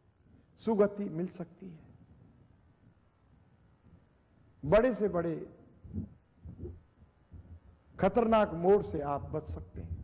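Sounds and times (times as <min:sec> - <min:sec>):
low studio room hum: 0:00.0 - 0:10.0.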